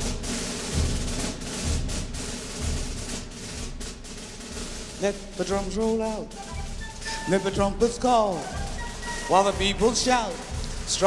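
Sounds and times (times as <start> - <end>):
low drum beats: 0.0 - 11.0
snare drum strokes: 0.0 - 11.0.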